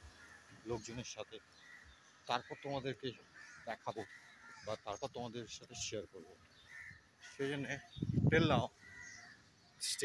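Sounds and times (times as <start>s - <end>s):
crows cawing: 0.0s - 8.0s, 8.6s - 9.7s
man's voice: 7.4s - 8.8s.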